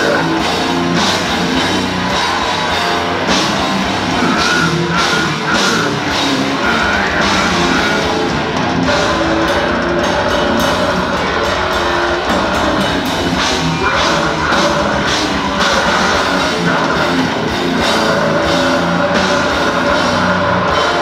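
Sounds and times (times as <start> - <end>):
death metal band playing: 0.0 - 21.0.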